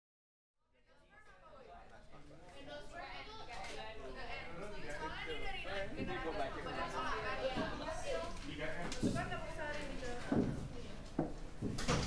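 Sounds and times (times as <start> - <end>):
students chattering: 1.1 - 12.0.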